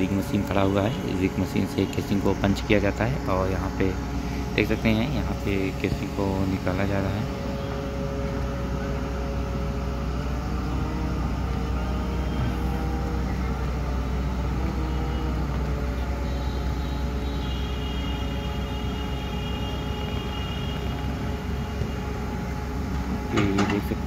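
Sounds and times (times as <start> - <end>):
diesel engines droning: 0.0 - 24.0
faint high whine: 0.0 - 24.0.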